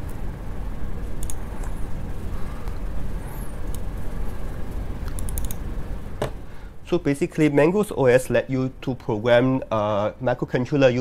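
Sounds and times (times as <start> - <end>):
low rumble of room noise: 0.0 - 11.0
laptop keyboard clicks: 5.0 - 5.6.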